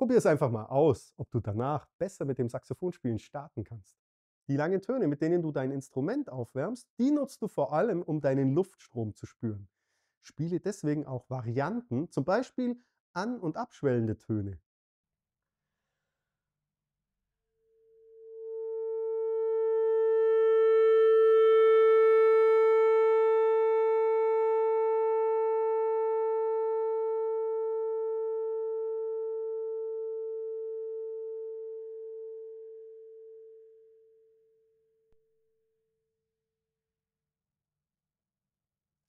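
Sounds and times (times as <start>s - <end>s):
alto saxophone long note: 18.2s - 32.8s.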